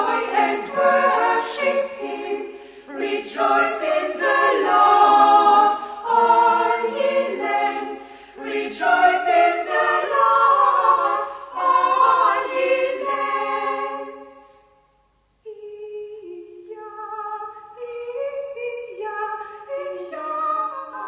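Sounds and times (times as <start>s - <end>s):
choir singing unaccompanied: 0.0s - 14.7s.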